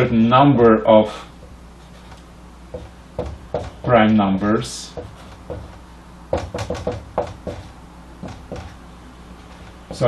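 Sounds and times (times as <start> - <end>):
marker tapping on whiteboard: 2.7 - 4.0, 4.9 - 8.8.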